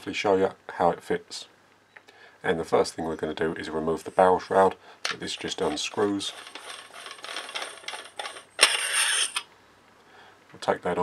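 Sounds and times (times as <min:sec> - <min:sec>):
metal threads scraping and ticking: 0:05.1 - 0:09.4
metallic scrape with high ring: 0:08.6 - 0:09.4.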